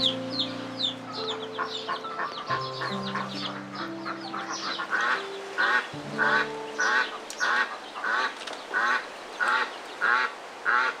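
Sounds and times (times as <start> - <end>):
held musical notes: 0.0 - 8.5
duck quacking: 1.1 - 11.0.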